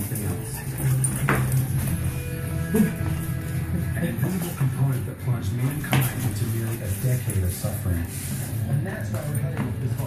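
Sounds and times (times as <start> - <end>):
television speech: 0.0 - 10.0.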